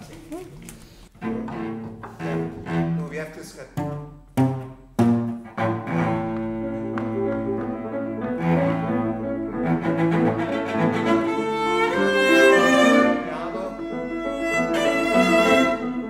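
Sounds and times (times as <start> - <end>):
two cellos playing: 1.1 - 16.0.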